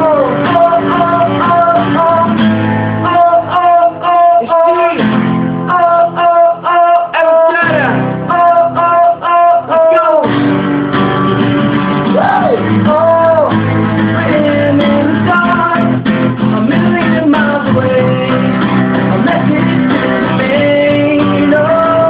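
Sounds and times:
man singing: 0.0 - 10.4, 12.0 - 22.0
acoustic guitars strummed: 0.0 - 22.0.

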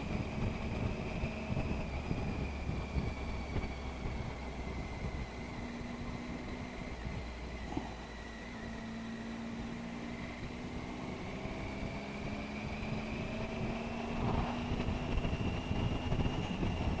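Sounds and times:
motorcycle engine cruising: 0.0 - 17.0
wind noise on microphone: 0.0 - 17.0.

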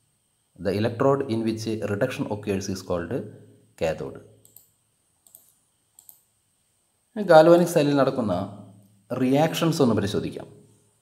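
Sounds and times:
computer mouse clicks: 4.4 - 6.3.

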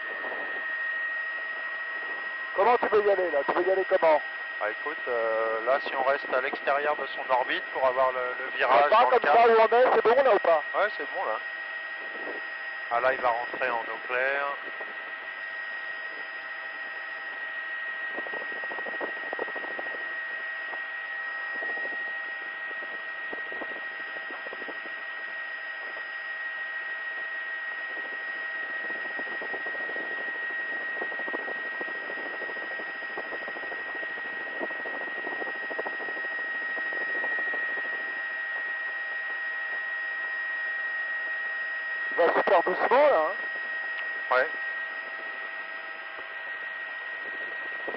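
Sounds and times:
high-pitched whine: 0.0 - 47.9
helicopter cabin hiss: 42.2 - 43.4.

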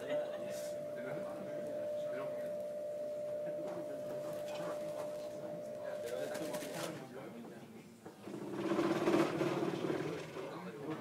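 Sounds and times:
steady thin tone: 0.0 - 7.0
indistinct chatter of people: 0.0 - 11.0.

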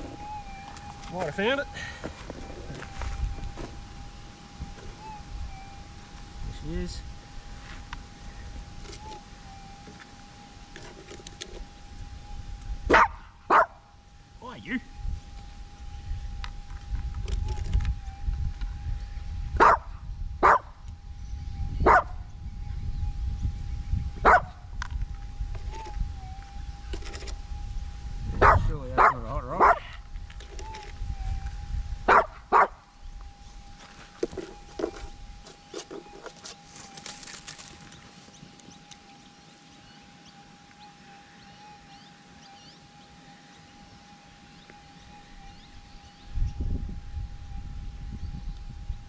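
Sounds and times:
metal detector hum: 0.0 - 49.0
dog yelping: 12.9 - 13.8, 19.6 - 20.7, 21.9 - 22.1, 24.2 - 24.5, 28.4 - 29.9, 32.1 - 32.8
small dog barking: 12.9 - 13.8, 19.6 - 20.7, 21.8 - 22.2, 24.2 - 24.6, 28.4 - 29.9, 32.1 - 32.8.

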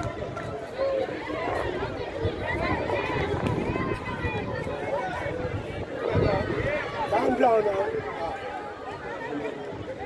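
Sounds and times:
voices calling out and chattering: 0.0 - 10.0.

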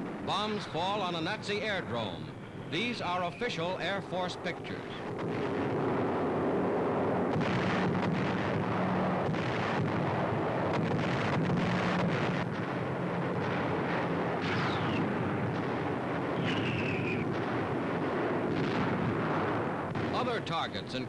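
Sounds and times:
aircraft engines droning: 0.0 - 9.3, 10.0 - 21.0
explosion blasts: 0.0 - 21.0
falling bomb whistle: 16.4 - 17.3.

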